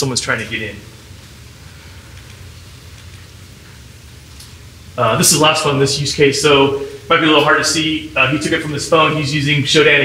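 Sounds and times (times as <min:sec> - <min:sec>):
low hum: 0:00.2 - 0:10.0.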